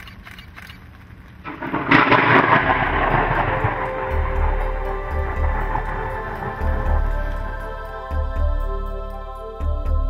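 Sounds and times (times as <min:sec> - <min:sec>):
rain: 0:00.9 - 0:08.1
thunder crack and rumble: 0:01.4 - 0:07.6.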